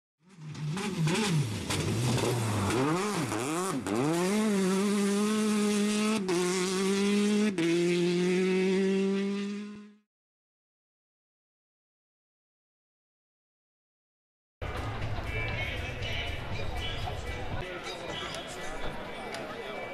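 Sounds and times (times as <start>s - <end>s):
car engine revving: 0.3s - 10.0s.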